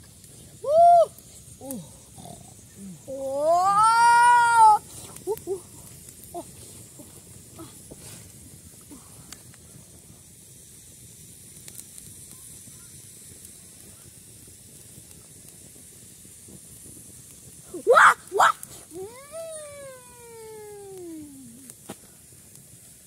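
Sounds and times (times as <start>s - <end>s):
faint steady hiss: 0.0s - 23.0s
boy crying out: 0.6s - 1.8s, 3.1s - 5.6s, 17.8s - 21.5s.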